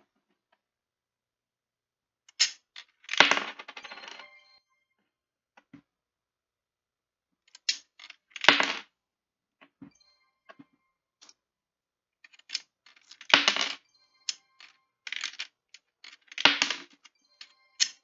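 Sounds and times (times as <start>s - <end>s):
loud coin clatters: 2.3s - 4.2s, 12.3s - 18.0s
coins clinking into coin slot: 2.3s - 4.3s, 12.3s - 18.0s.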